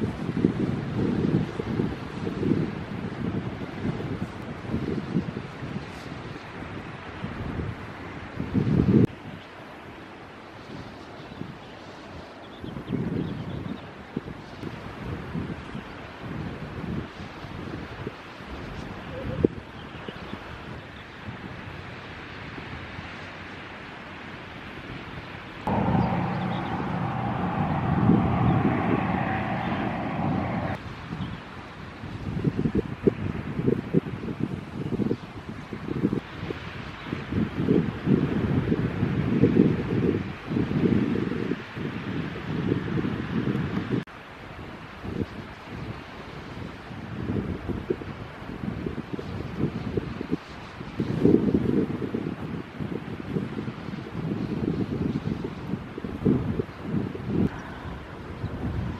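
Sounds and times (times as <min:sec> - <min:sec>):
hum with held tone: 0:25.7 - 0:30.8
wind buffeting microphone: 0:25.7 - 0:31.4, 0:47.0 - 0:58.9.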